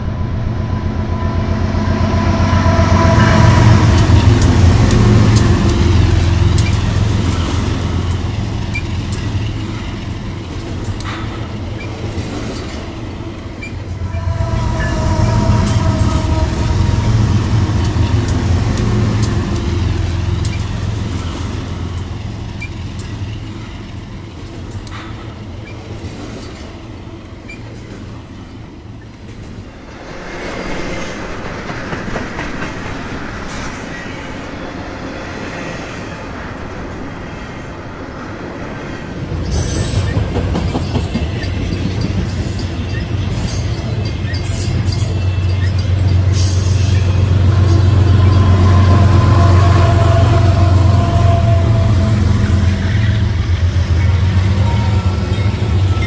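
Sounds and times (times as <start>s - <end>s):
diesel locomotive low rumble: 0.0s - 35.3s, 36.2s - 56.0s
train wheels clacking over rails: 2.8s - 34.7s, 39.2s - 56.0s.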